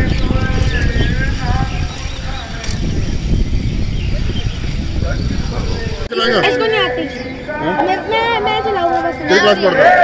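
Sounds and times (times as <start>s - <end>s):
wind rumbling on microphone: 0.0s - 6.1s
close conversation: 0.2s - 10.0s.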